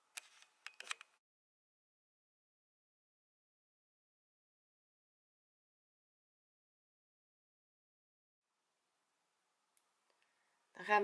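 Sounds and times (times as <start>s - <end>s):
sharp clicks: 0.1s - 1.2s.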